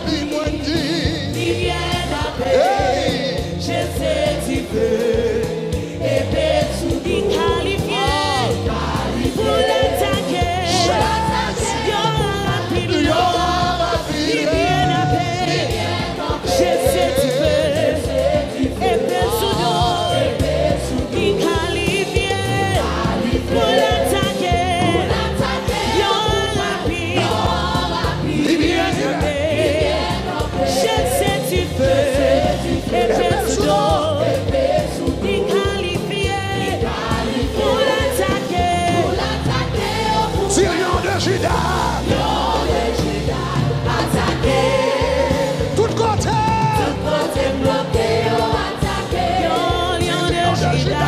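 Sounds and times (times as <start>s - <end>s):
band with drum kit: 0.0s - 51.0s
gospel choir singing: 0.0s - 51.0s.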